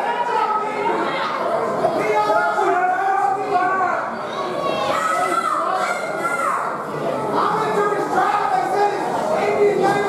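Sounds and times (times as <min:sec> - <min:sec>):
children's voices: 0:00.0 - 0:02.7, 0:03.4 - 0:10.0
crowd talking and shouting: 0:00.0 - 0:10.0.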